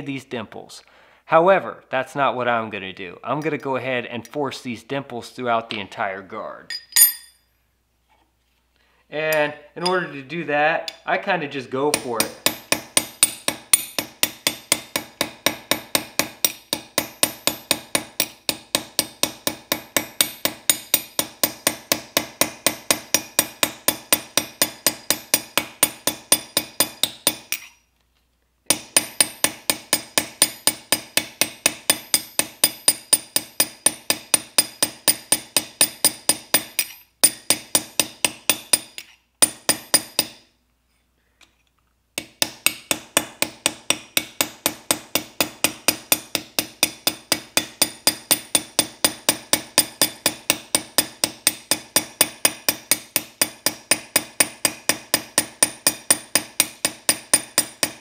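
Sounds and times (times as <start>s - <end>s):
hammer striking steel punch: 6.7s - 7.4s, 11.9s - 27.8s, 28.7s - 40.5s, 42.2s - 58.0s.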